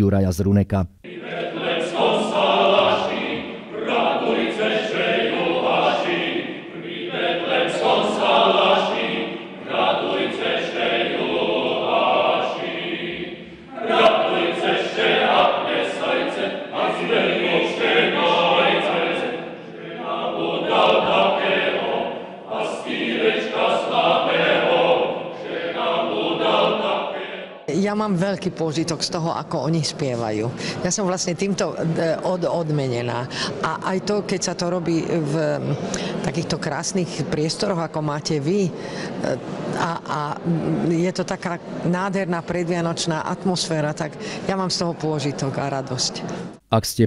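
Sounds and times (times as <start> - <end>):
male choir singing a cappella: 1.0 - 28.3.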